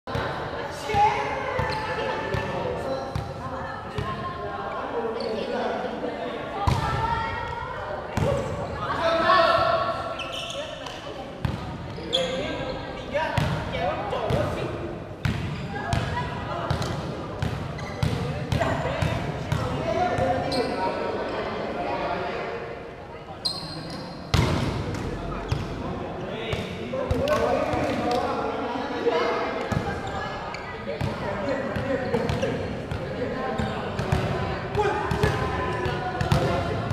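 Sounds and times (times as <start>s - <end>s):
players calling and chatting: 0.1s - 36.9s.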